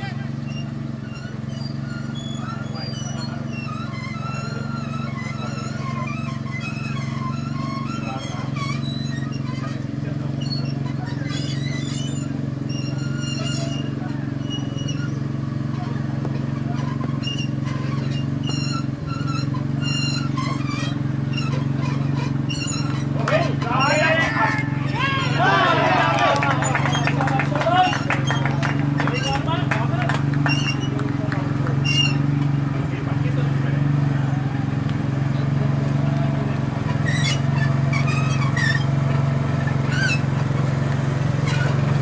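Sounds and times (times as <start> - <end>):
distant voices: 0.0 - 42.0.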